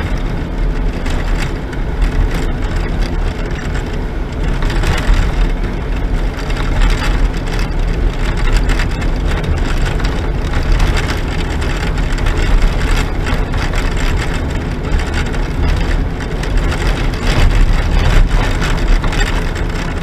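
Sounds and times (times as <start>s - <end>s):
engine drone: 0.0s - 20.0s
knocks and rattles over bumps: 0.0s - 20.0s
tyre rumble: 0.0s - 20.0s.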